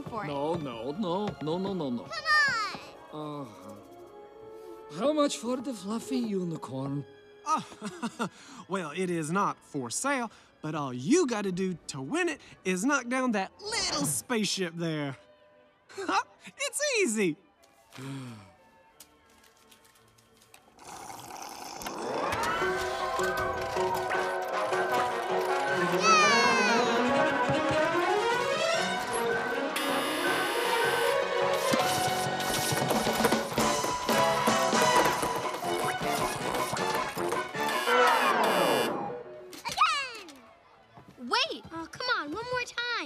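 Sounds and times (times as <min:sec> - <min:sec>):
electronic arcade game music: 0:23.0 - 0:39.1.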